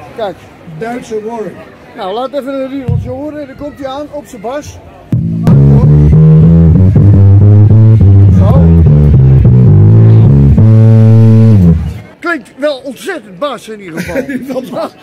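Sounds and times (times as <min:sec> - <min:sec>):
electric bass guitar riff: 0:05.1 - 0:12.1.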